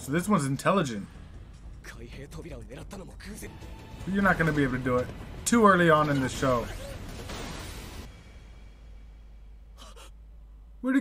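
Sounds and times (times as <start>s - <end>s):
man speaking: 1.8s - 6.8s, 10.8s - 11.0s.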